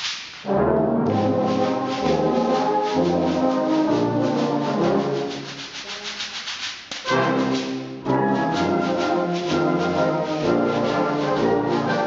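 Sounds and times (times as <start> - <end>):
sand blocks rubbing: 5.3 - 7.1.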